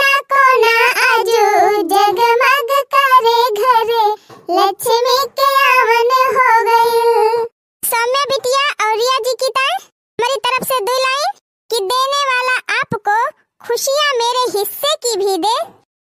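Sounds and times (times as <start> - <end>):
high cartoon voice singing: 0.0 - 13.1.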